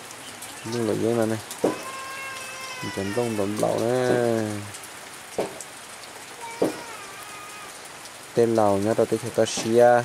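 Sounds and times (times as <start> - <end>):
steady rain falling: 0.0 - 10.0
sharp taps: 1.6 - 1.9, 5.3 - 5.7, 6.6 - 6.9.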